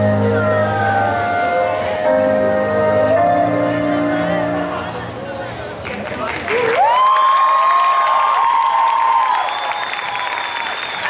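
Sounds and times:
audience clapping: 5.8 - 11.0
shrill cheer: 6.5 - 11.0
long whoop: 6.7 - 11.0.

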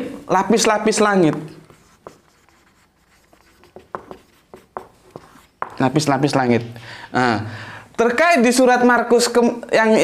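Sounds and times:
marker pen writing on whiteboard: 0.4 - 6.4.

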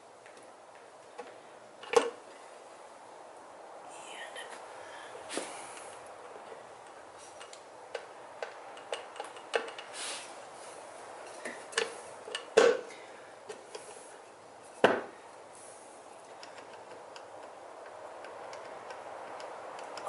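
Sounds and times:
light metallic clicks and knocks: 16.3 - 20.0.

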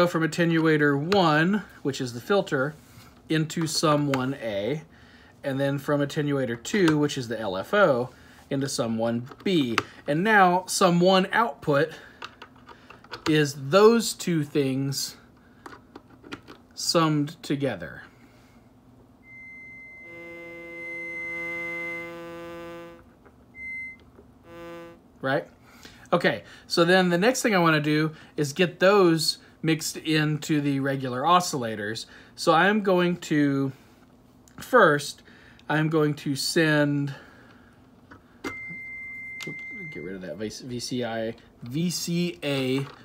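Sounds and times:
buzzy low synth tone: 19.2 - 25.0
steady high synth tone: 19.2 - 25.0.

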